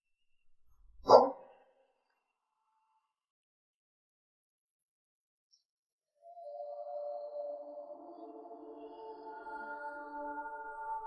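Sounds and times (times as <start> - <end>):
dog bark: 1.0 - 1.6.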